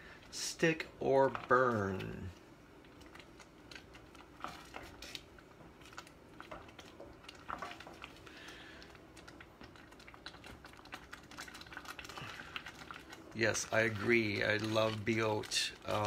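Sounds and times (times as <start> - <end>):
sauce simmering: 0.0 - 16.0
wooden spoon scraping a saucepan: 4.3 - 5.8, 6.4 - 8.2, 12.0 - 16.0.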